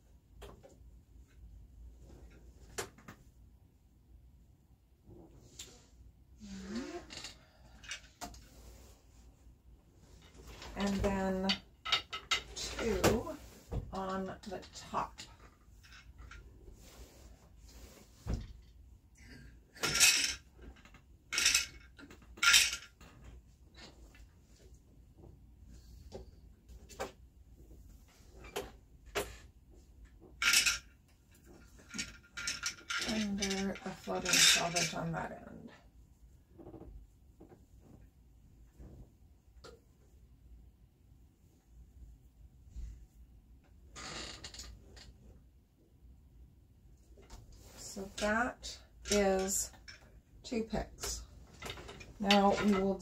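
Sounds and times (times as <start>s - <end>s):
loom shuttle swishing over threads: 30.4s - 35.2s
quiet handling: 47.0s - 53.0s.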